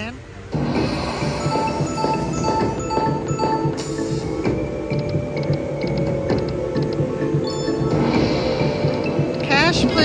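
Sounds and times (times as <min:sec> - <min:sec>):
slot machine game music: 0:00.8 - 0:10.0.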